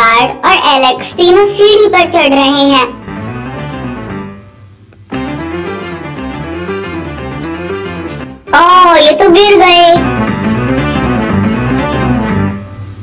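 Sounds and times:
cartoon background music: 0.0 - 12.9.

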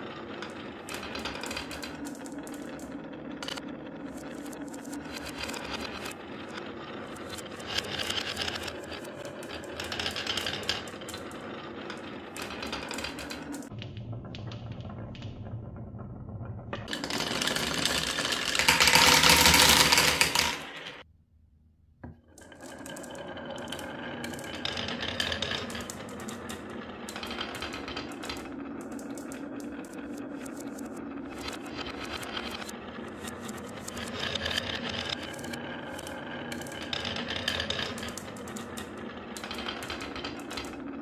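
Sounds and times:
marbles clattering down ramps: 0.0 - 21.0, 22.4 - 41.0
marbles rolling on wooden tracks: 0.0 - 21.0, 22.3 - 41.0.

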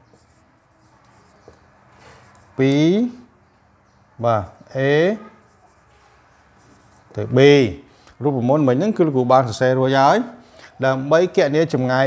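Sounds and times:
marker scratching on whiteboard: 0.0 - 3.3, 4.4 - 8.1.

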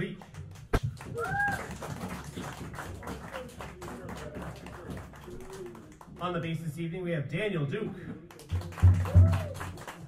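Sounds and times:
audience applauding: 0.4 - 6.1, 8.3 - 10.0
person whooping: 1.2 - 1.7, 9.0 - 9.7.

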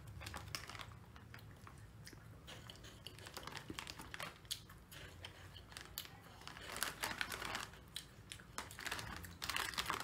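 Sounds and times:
crunchy snack being chewed: 0.0 - 10.0.

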